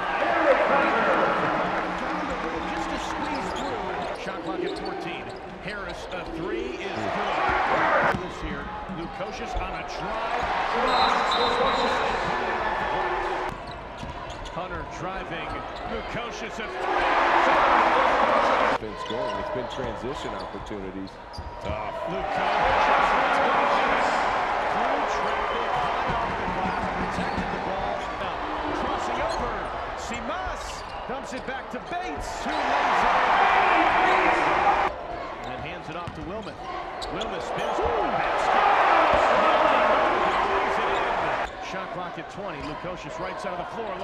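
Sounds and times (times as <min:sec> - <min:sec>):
crowd cheering: 0:00.0 - 0:04.9, 0:06.8 - 0:08.2, 0:09.3 - 0:13.5, 0:15.9 - 0:19.4, 0:21.7 - 0:35.6, 0:36.7 - 0:44.0
sneakers squeaking on court: 0:02.0 - 0:06.4, 0:13.4 - 0:14.6, 0:25.6 - 0:28.2, 0:35.4 - 0:37.3.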